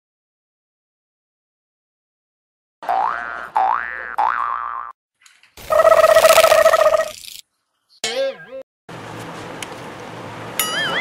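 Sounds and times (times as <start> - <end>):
rising cartoon sweeps: 5.6 - 7.2.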